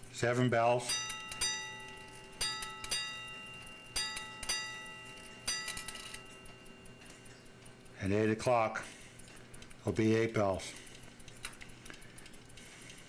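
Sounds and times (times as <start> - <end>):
clock bell striking: 0.8 - 7.3.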